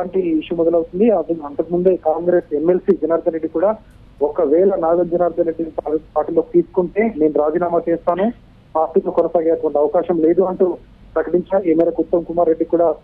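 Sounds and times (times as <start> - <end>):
news voice-over talking: 0.0 - 13.0.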